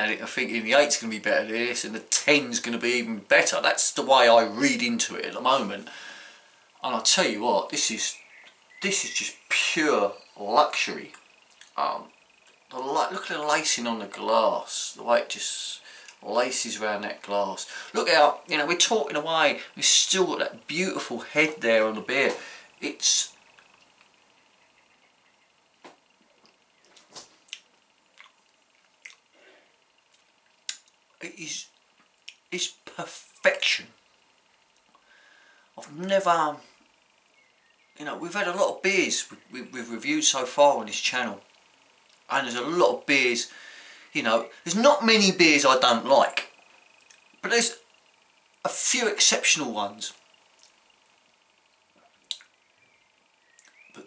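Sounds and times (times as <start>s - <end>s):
lip smacks and wet clicks: 11.5s - 11.8s, 26.4s - 29.2s, 30.1s - 31.0s, 32.1s - 32.4s, 47.0s - 47.2s, 52.2s - 52.5s, 53.6s - 53.8s.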